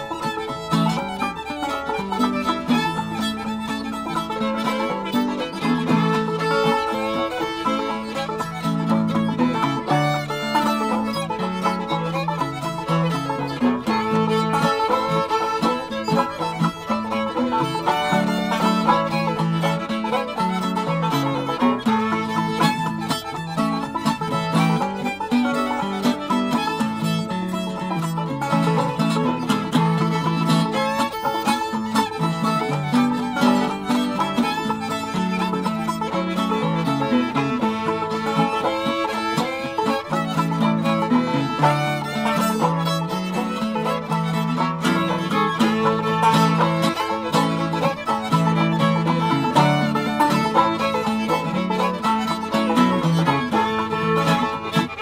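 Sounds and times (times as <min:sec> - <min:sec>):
banjo: 0:00.0 - 0:55.0
fiddle: 0:00.0 - 0:55.0
flatpicked guitar bass line: 0:00.0 - 0:55.0.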